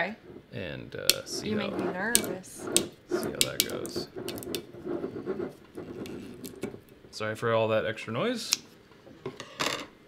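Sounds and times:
scissors scratching and clicking: 0:01.1 - 0:04.7.

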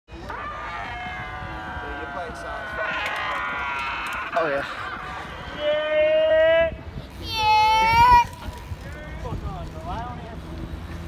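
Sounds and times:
people yelling and hollering: 0:00.1 - 0:09.4
wind rumble on microphone: 0:00.2 - 0:11.0.

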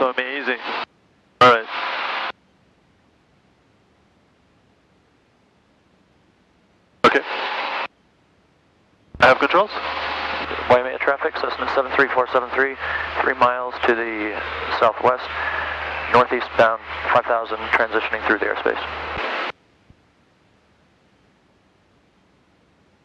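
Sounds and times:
radio squelch hiss: 0:00.0 - 0:02.4, 0:07.0 - 0:07.9, 0:09.2 - 0:19.6
low hum: 0:00.0 - 0:23.0
person speaking over radio: 0:07.1 - 0:07.4, 0:09.2 - 0:09.9, 0:10.5 - 0:19.0.

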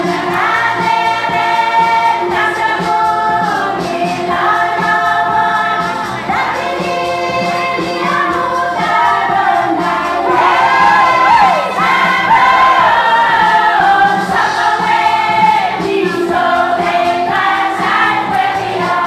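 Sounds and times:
women singing together: 0:00.0 - 0:19.0.

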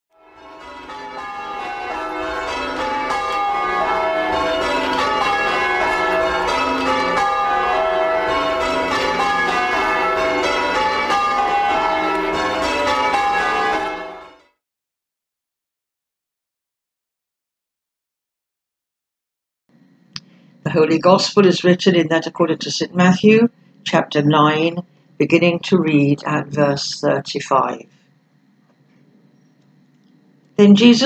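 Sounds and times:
church bells ringing: 0:00.2 - 0:14.6.

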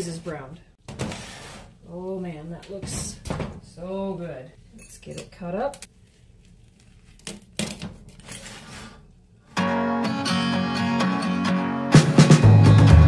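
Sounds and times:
background music: 0:09.6 - 0:13.0.

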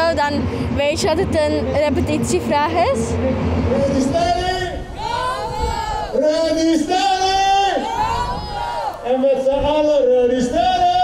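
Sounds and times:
people shouting a cheer: 0:04.9 - 0:09.1.

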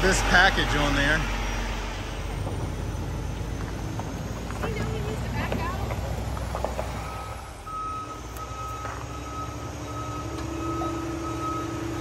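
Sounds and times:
engine running: 0:00.0 - 0:12.0
reversing alarm beeping: 0:07.0 - 0:12.0.

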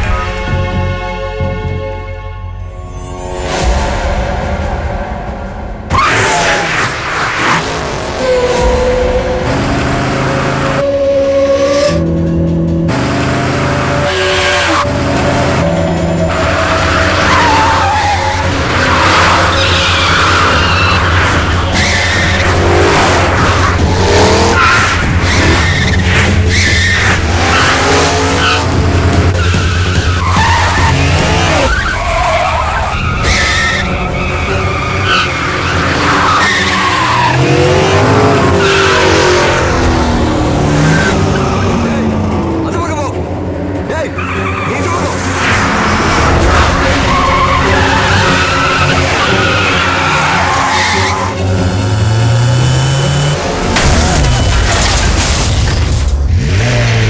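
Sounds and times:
background music: 0:00.0 - 0:57.0
car engines revving: 0:03.3 - 0:57.0
tyres skidding and squealing: 0:05.8 - 0:57.0.

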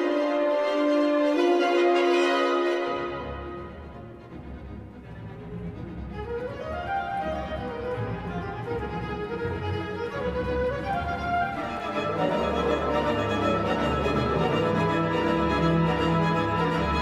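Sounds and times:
orchestral music with violin melody: 0:00.0 - 0:17.0.

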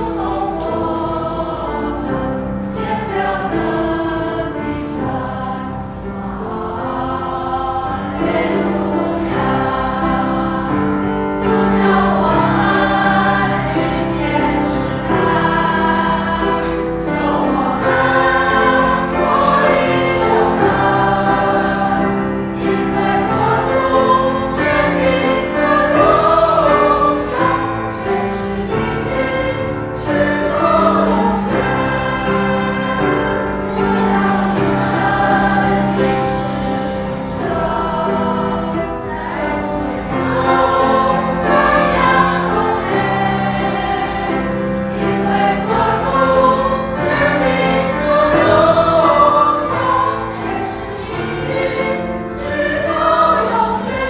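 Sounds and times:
mixed choir singing a hymn: 0:00.0 - 0:54.0.

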